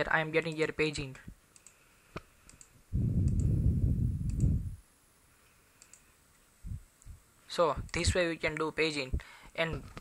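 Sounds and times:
computer mouse clicking: 1.6s - 3.5s, 4.2s - 4.6s, 5.8s - 6.1s.

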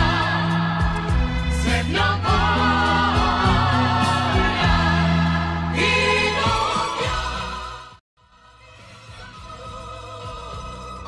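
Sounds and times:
voices singing with vibrato: 0.0s - 11.0s.

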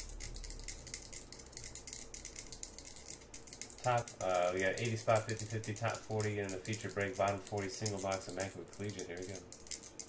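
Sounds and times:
fast light rattling clicks: 0.0s - 10.0s.

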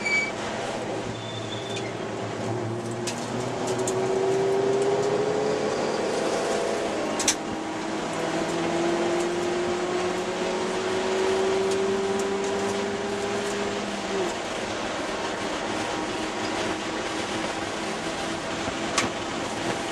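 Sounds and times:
car engine accelerating: 0.4s - 19.9s.

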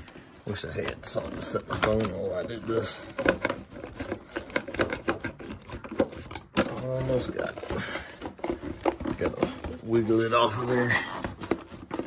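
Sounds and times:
hose and clamp clicking and creaking: 0.0s - 12.0s.

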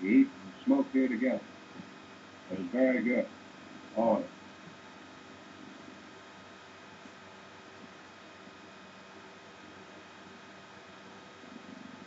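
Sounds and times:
film soundtrack hiss: 0.0s - 12.0s.

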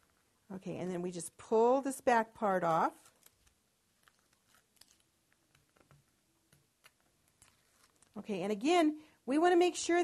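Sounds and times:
tape and paper rustling: 2.9s - 6.0s, 6.8s - 8.2s.

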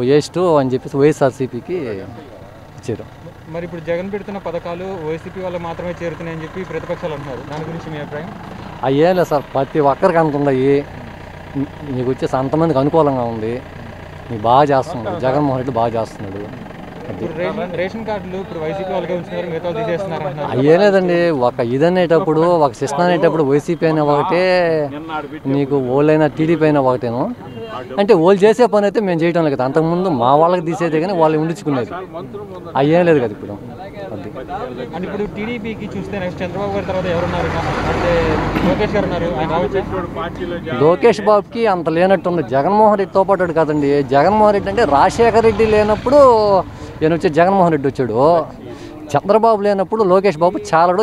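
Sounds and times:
heavy lorry driving past: 0.0s - 51.0s
man speaking into microphone: 17.2s - 51.0s.

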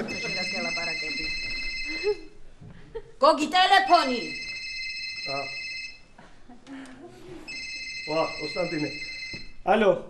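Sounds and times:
mobile phone ringtone: 0.0s - 2.4s, 3.9s - 6.1s, 7.5s - 9.6s.

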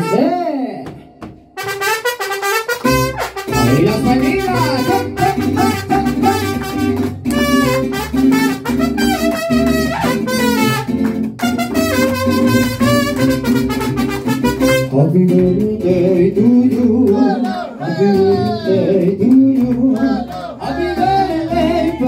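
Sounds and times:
trumpets playing melody: 0.0s - 0.4s, 1.6s - 15.0s
strummed guitars: 0.9s - 22.0s
bass guitar line: 2.8s - 22.0s.

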